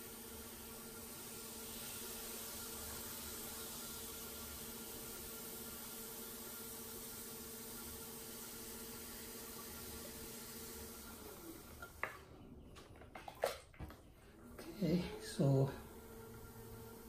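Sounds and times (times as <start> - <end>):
potter's wheel motor hum: 0.0 - 13.0, 14.2 - 17.0.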